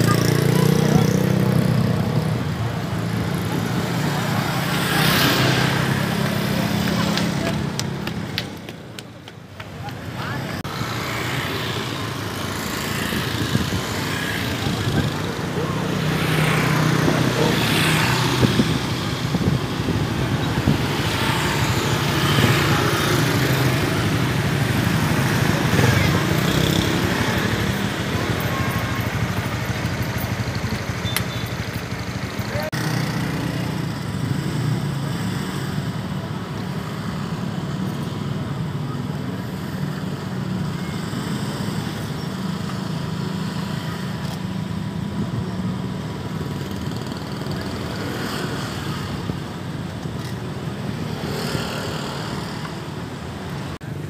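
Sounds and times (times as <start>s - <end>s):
crowd voices: 0.0s - 31.0s
vehicles passing in traffic: 0.0s - 54.0s.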